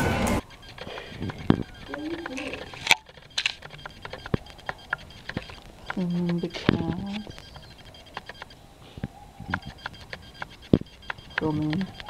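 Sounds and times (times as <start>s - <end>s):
light irregular clicks and taps: 0.4s - 12.0s.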